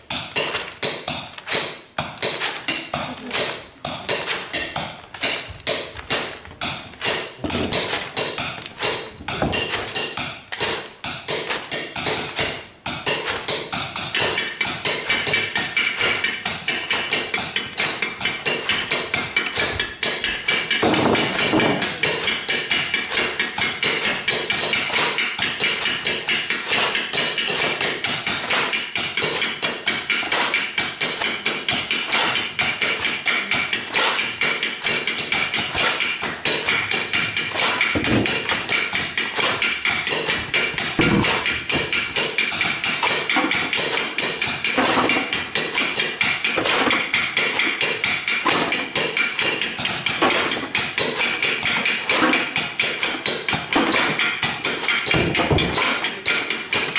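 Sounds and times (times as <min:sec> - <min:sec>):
sticks tapping on plastic tubes: 0:00.0 - 0:56.9.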